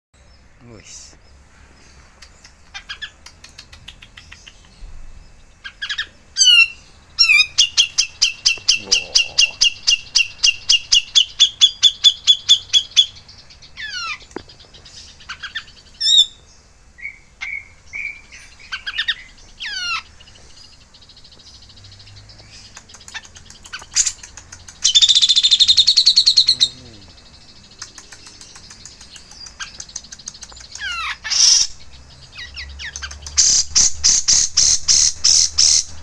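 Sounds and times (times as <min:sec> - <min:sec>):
songbird calling: 0:00.2 - 0:36.0.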